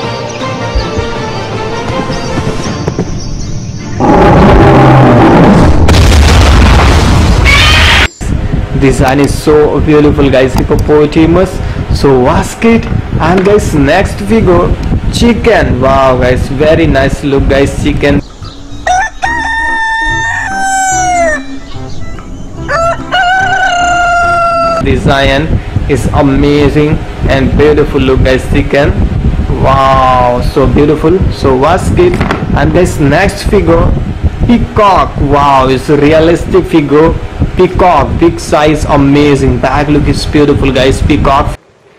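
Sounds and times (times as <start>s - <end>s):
cinematic music: 0.0s - 4.1s, 18.6s - 24.7s
deep rumble: 0.8s - 18.8s
loud boom: 4.0s - 8.1s
rooster crowing: 18.6s - 21.7s, 22.6s - 24.8s.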